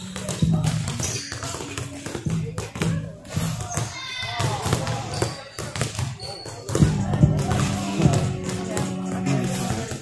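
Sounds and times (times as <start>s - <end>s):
voices in hall: 0.0s - 10.0s.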